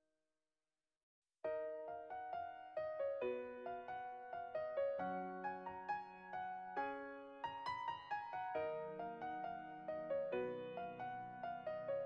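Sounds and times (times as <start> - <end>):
gentle piano melody: 1.5 - 12.0.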